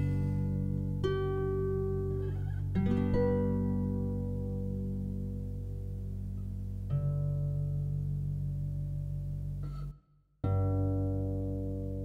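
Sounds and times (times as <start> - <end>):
harp chord plucked: 0.0 - 6.2.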